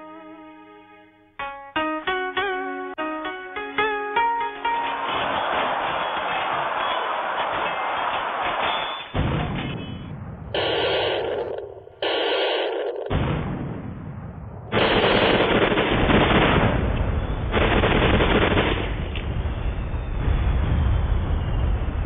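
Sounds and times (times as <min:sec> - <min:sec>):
battle soundtrack with gunfire: 0:04.9 - 0:21.8.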